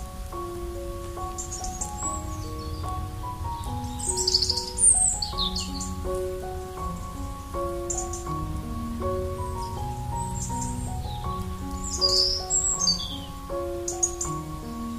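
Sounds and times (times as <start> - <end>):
soft piano music: 0.0 - 14.9
birds singing: 0.1 - 14.9.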